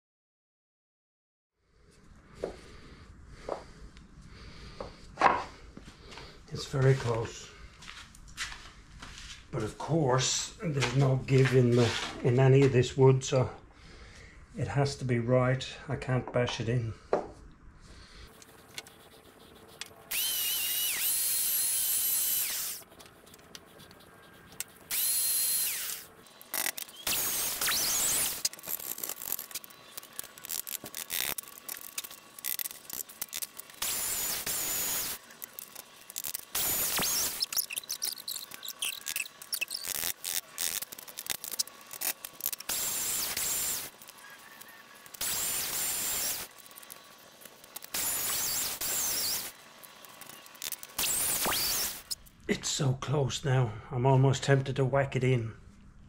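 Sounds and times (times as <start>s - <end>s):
power tool motor whining: 18.4s - 52.2s.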